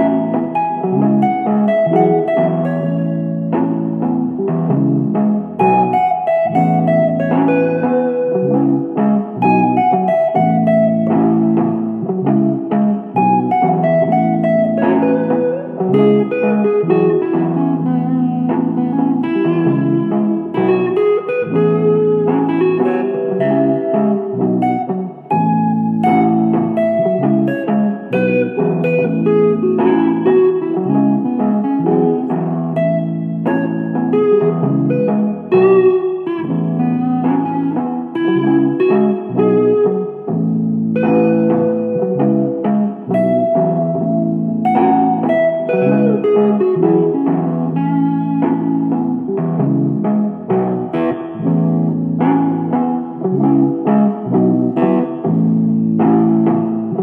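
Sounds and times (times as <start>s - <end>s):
electric guitar rhythm chords: 0.0s - 57.0s
picked electric guitar lead lines: 0.0s - 57.0s.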